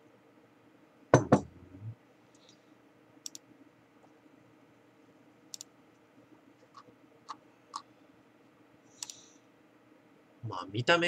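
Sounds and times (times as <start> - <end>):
small high clicks: 9.0 - 9.2.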